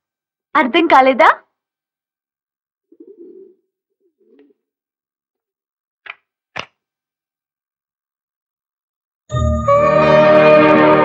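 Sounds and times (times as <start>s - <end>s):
doves cooing: 2.8s - 4.7s.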